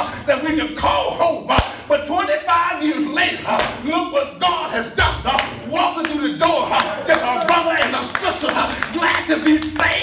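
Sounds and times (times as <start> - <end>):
man preaching: 0.0 - 10.0.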